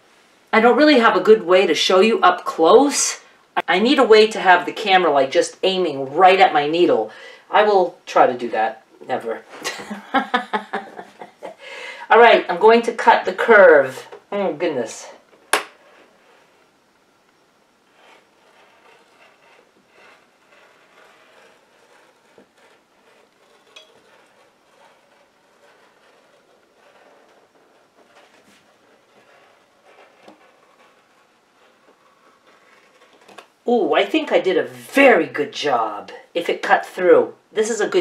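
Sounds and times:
rotary cutter scraping fabric: 15.1s - 16.7s, 17.8s - 33.6s.

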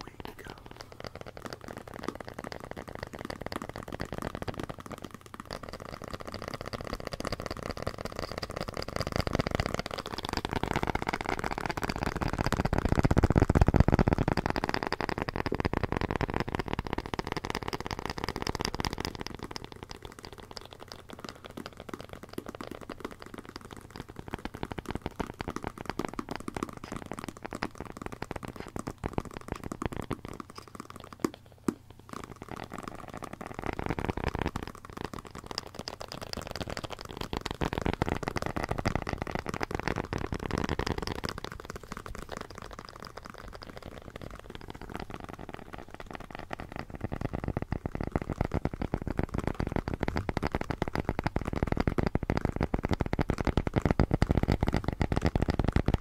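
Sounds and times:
fingers tapping and scratching: 0.0s - 56.0s.

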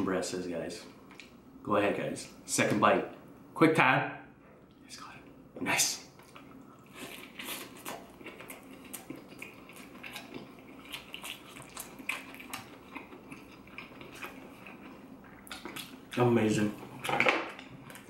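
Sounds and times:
crispy food chewed and crunched: 6.2s - 18.0s.

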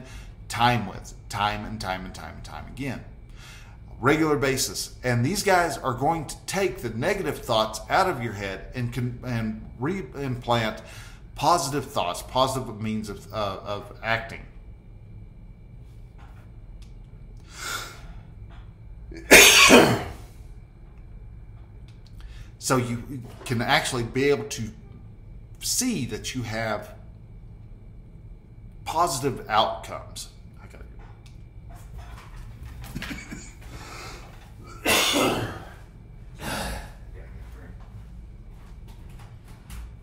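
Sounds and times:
man coughing: 19.2s - 20.2s, 32.8s - 34.0s, 34.6s - 35.8s.

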